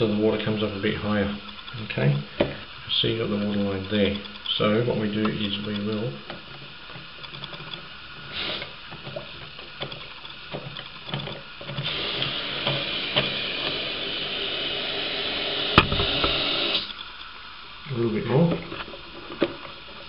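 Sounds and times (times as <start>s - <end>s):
water hissing into cistern: 7.8s - 18.4s.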